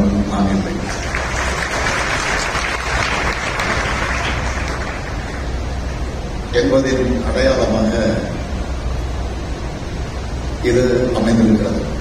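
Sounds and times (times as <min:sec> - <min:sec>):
crowd applauding: 0:00.8 - 0:05.7.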